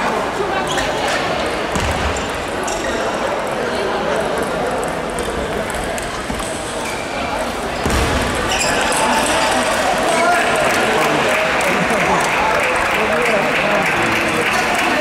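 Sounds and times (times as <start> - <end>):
voices chattering: 0.0 - 15.0.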